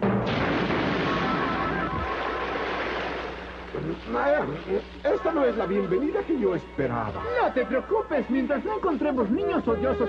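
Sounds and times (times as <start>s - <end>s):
cartoon explosion and splash: 0.0s - 3.8s
music: 5.0s - 10.0s.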